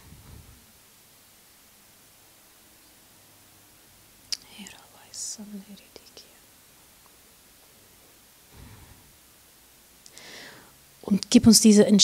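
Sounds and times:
woman whispering: 0:04.4 - 0:06.5.

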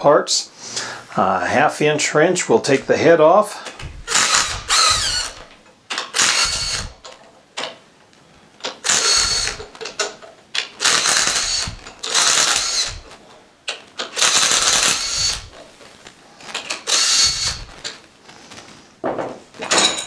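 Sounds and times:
cordless drill motor whining: 0:03.8 - 0:05.5, 0:06.1 - 0:07.0, 0:08.8 - 0:09.8, 0:10.8 - 0:13.2, 0:14.2 - 0:15.6, 0:16.8 - 0:17.8.

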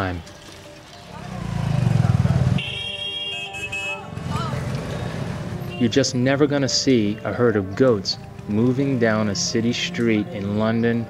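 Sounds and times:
vehicle engine rumbling: 0:01.0 - 0:02.6, 0:04.1 - 0:05.9
vehicle horn held tone: 0:02.5 - 0:04.1.

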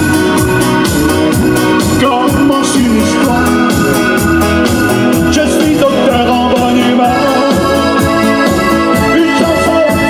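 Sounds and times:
instrumental dance-band music: 0:00.0 - 0:10.0.

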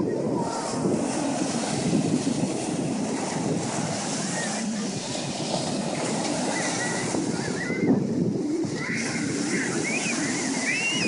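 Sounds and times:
ocean surf breaking: 0:00.0 - 0:11.0
wind buffeting microphone: 0:00.0 - 0:11.0.

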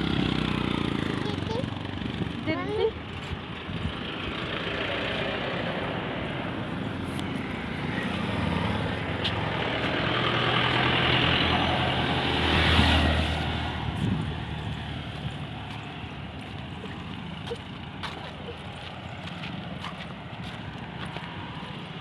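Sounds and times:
heavy vehicle passing: 0:00.0 - 0:03.0, 0:03.8 - 0:22.0
highway traffic rushing: 0:00.0 - 0:22.0.

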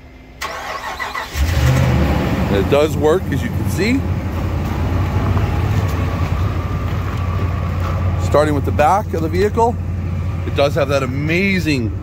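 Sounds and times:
pickup truck engine idling: 0:00.4 - 0:12.0.

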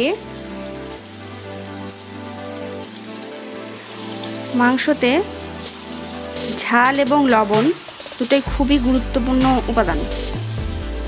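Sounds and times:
food sizzling in oil: 0:00.0 - 0:11.0
soft background music: 0:00.0 - 0:11.0.

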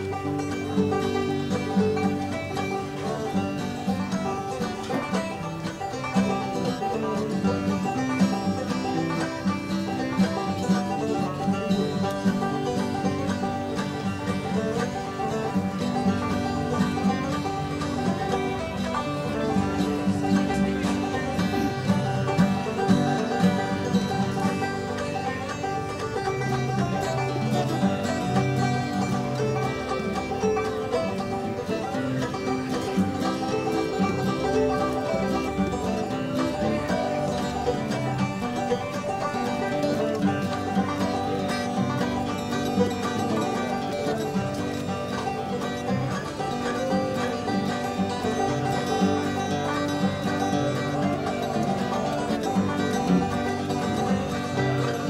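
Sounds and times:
banjo playing a tune: 0:00.0 - 0:55.0.

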